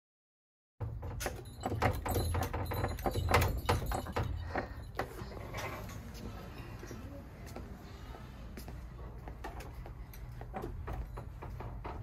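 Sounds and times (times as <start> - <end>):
glass door rattling: 0.8 - 4.6, 10.5 - 12.0
bells jingling: 1.2 - 5.5.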